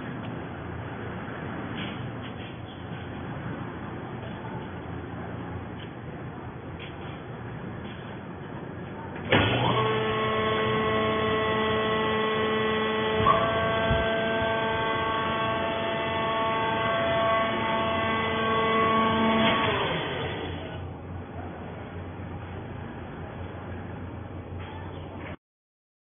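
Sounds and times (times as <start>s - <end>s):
machine clunk: 9.2s - 9.9s
electric motor and pump whine: 9.2s - 21.0s.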